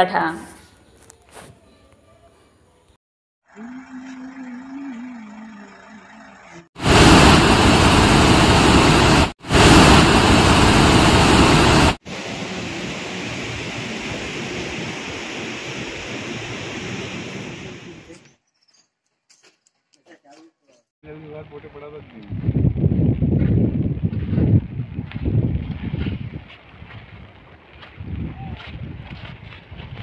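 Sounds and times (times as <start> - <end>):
water rushing from spillway: 6.8 - 18.0.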